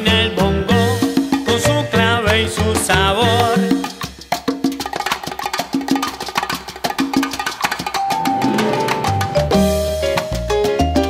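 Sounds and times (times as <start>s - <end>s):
salsa percussion: 0.0s - 11.0s.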